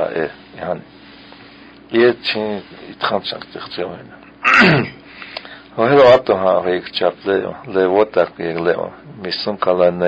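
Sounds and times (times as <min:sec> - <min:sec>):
man clearing throat: 0:04.4 - 0:05.0.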